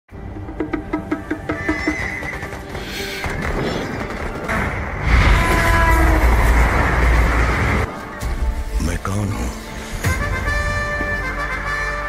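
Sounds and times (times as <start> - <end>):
dramatic music: 0.1 - 12.0.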